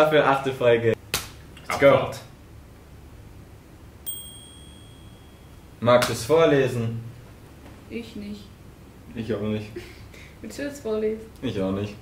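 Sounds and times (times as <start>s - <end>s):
high electronic ding: 4.1s - 5.7s.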